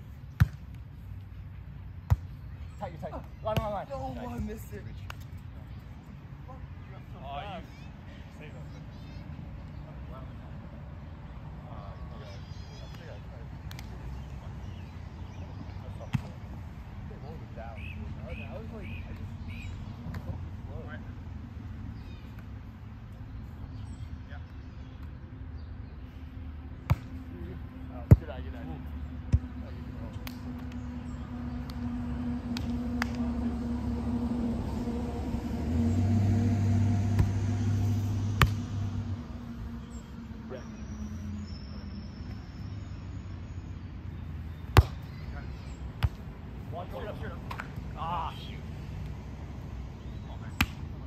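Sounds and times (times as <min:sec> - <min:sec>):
traffic engine hum: 0:00.0 - 0:51.0
volleyball smacks: 0:26.9 - 0:27.2, 0:37.1 - 0:37.4, 0:38.4 - 0:38.6, 0:44.7 - 0:45.0.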